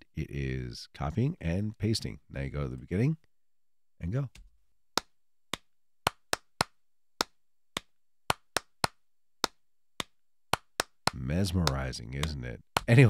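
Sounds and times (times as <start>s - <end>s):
sharp hand claps: 5.0s - 13.0s.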